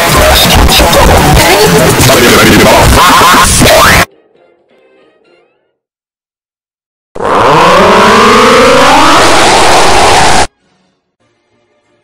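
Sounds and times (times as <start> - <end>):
loud distorted noise with rising tones: 0.0 - 4.1, 7.2 - 10.5.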